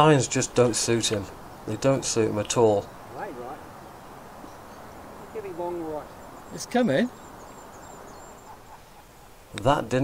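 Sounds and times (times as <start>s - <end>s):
open air hiss: 0.0s - 10.0s.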